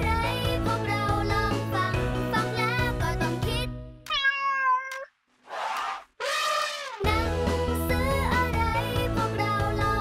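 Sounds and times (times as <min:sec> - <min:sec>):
cat meowing: 0:04.1 - 0:05.1.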